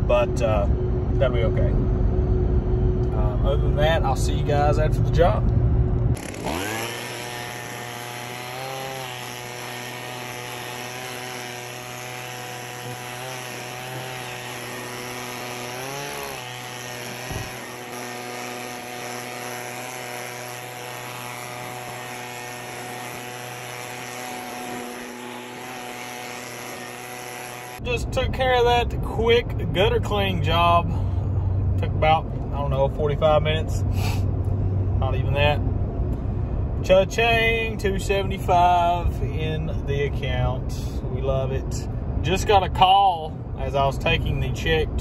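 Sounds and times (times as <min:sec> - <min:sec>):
motorized gutter cleaning tool running: 0:06.1 - 0:28.0.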